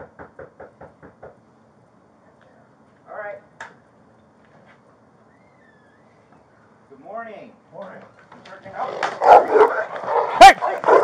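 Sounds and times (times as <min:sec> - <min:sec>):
knuckles knocking on door: 0:00.0 - 0:01.4.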